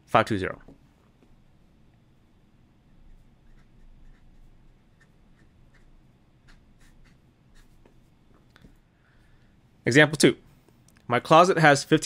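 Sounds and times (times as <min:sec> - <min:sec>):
pen nib scratching on paper: 0:02.9 - 0:08.1.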